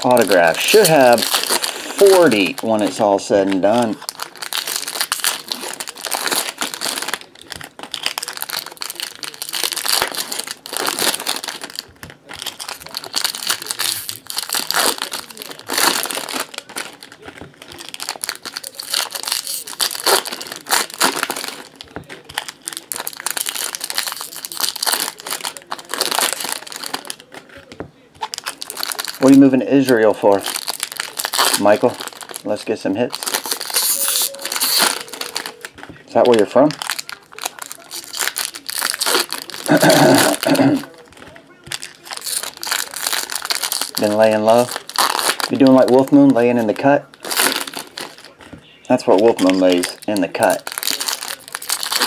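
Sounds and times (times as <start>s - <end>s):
foil wrappers crinkling and tearing: 0.0s - 52.0s.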